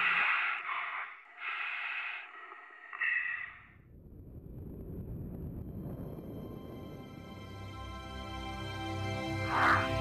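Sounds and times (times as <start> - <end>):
person breathing inside a helmet: 0.0 - 3.8.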